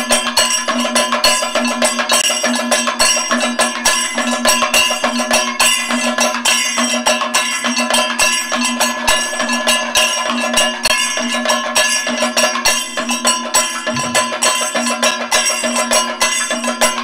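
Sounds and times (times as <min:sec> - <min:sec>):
fast drum strokes: 0:00.0 - 0:17.0
gong: 0:00.0 - 0:17.0
ringing metal cymbals: 0:00.0 - 0:17.0.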